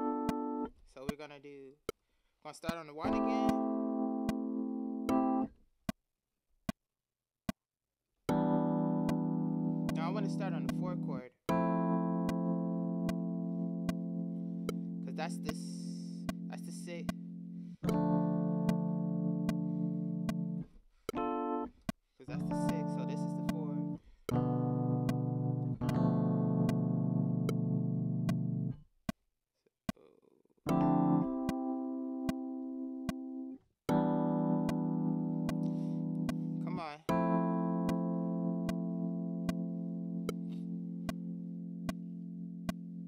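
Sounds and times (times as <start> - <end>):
metronome click: 0.0 - 1.2, 2.6 - 5.5, 8.3 - 28.8, 30.7 - 43.0
sustained keyboard chords: 0.0 - 1.3, 2.5 - 5.6, 8.3 - 28.8, 30.7 - 43.0.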